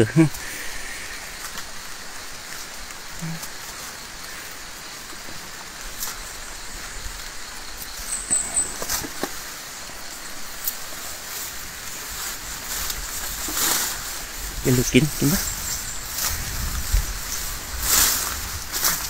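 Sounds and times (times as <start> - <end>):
steady outdoor hiss: 0.0 - 19.0
rustles and snaps of vegetation: 1.3 - 19.0
high chirp: 8.0 - 9.2.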